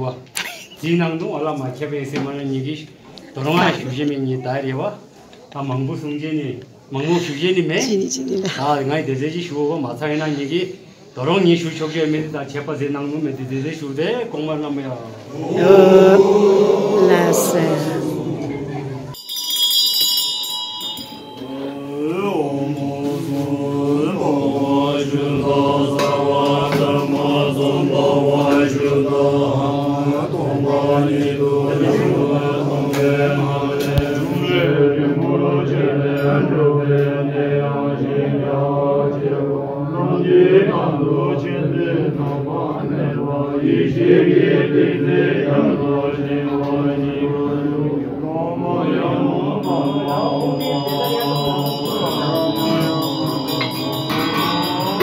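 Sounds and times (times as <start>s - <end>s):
men chanting prayers: 3.4s - 5.0s, 5.6s - 19.2s, 21.1s - 55.0s
hand bells ringing: 19.2s - 22.3s, 49.6s - 55.0s.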